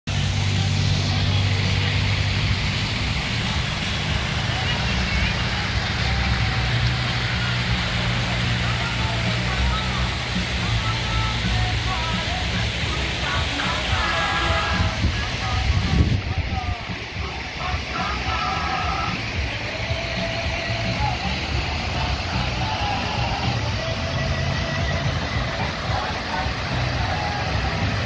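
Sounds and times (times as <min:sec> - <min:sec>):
waterfall rushing into stream: 0:00.1 - 0:28.0.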